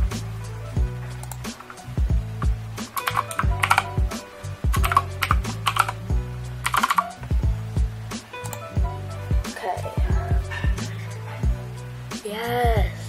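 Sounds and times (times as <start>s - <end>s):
background music with steady beat: 0.0s - 13.0s
computer keyboard typing clicks: 3.0s - 3.9s, 4.8s - 6.0s, 6.6s - 7.1s.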